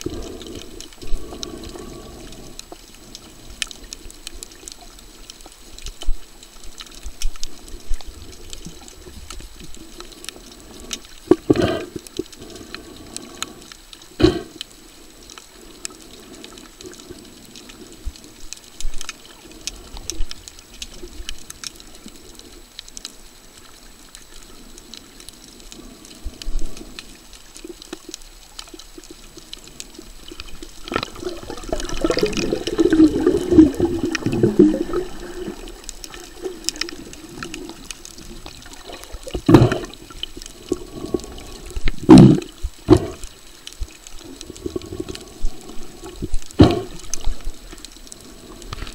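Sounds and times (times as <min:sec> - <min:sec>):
muffled water sloshing underwater: 0:00.0 - 0:48.9.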